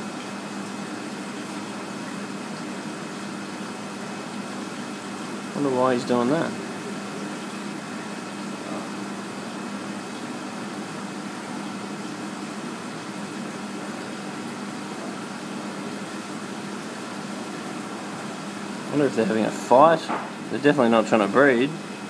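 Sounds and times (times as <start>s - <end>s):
aquarium equipment humming: 0.0s - 22.0s.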